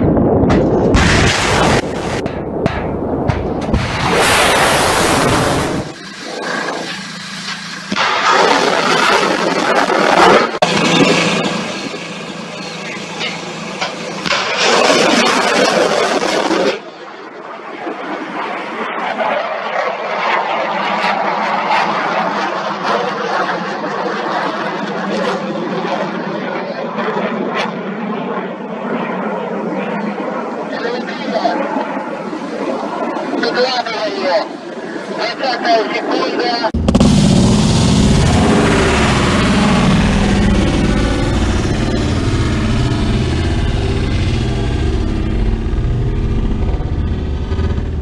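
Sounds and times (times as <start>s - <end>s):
rocket booster roar: 0.0s - 12.0s, 13.8s - 16.9s, 36.8s - 48.0s.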